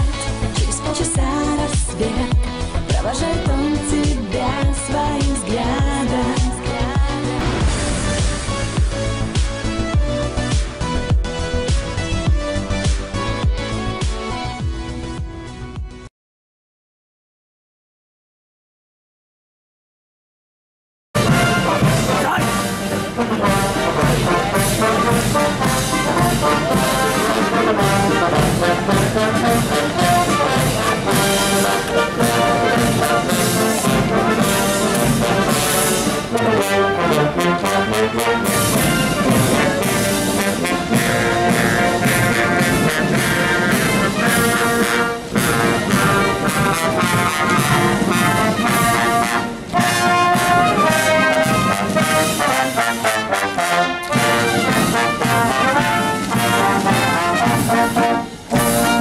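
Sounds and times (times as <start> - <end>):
drums: 0.0 - 16.1, 21.2 - 59.0
military brass band march: 7.4 - 15.2, 21.2 - 59.0.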